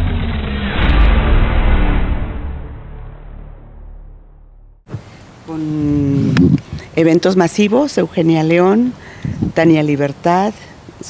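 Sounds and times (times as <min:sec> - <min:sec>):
deep sustained bass tones: 0:00.0 - 0:04.8
whoosh: 0:00.0 - 0:05.0.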